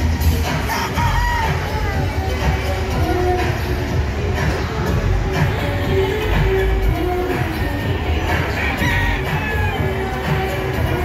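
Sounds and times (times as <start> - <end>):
background music: 0.0 - 11.0
rooster crowing: 8.5 - 9.9.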